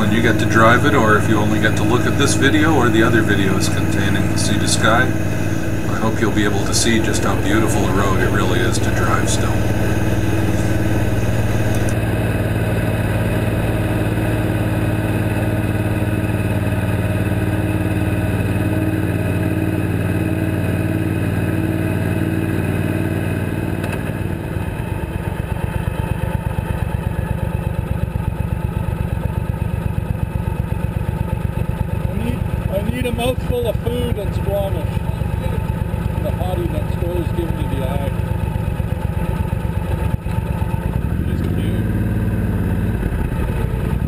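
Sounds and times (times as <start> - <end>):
motorcycle engine running: 0.0 - 44.0.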